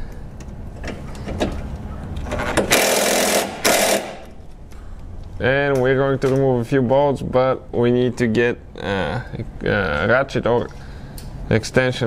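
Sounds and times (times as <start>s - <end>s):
impact wrench hammering: 2.4s - 4.4s.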